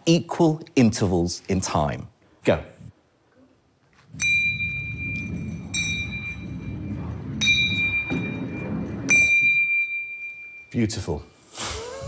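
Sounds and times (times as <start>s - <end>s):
metal ball rolling on wooden ramp: 4.0s - 10.7s
small bells ringing: 4.1s - 11.0s.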